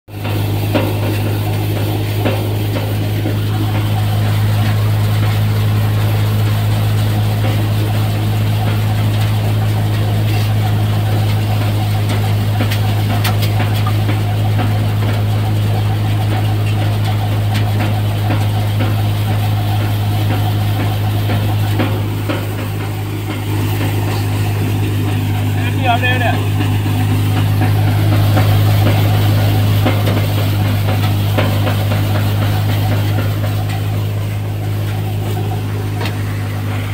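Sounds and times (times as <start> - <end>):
threshing machine humming: 0.1 - 36.9.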